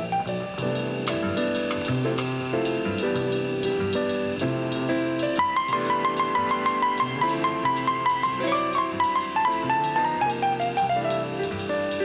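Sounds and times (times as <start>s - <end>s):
piano playing held chords: 0.0s - 12.0s.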